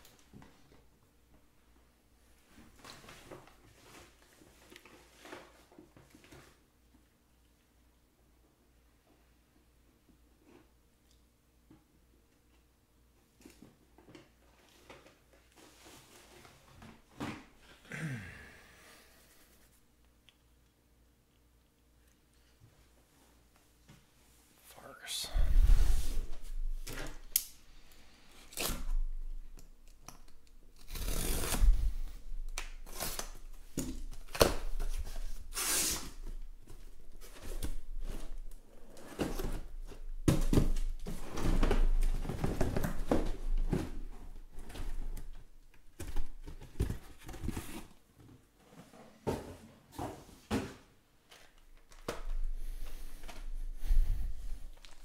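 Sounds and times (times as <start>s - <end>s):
tape and cardboard ripping: 28.4s - 29.2s, 30.7s - 36.3s.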